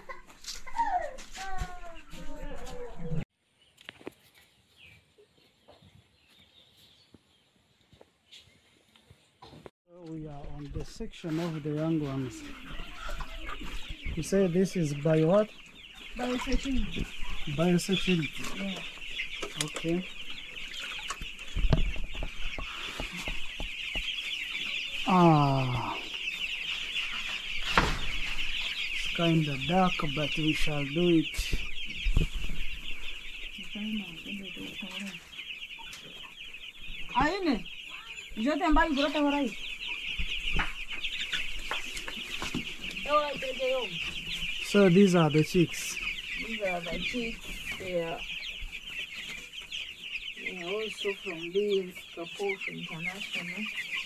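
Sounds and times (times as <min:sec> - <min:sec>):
chicks peeping: 0:00.0 - 0:54.0.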